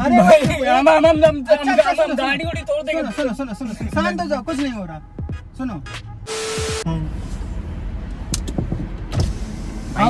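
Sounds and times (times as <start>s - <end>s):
car engine running: 6.0s - 10.0s
hissing burst with steady tone: 6.3s - 6.9s.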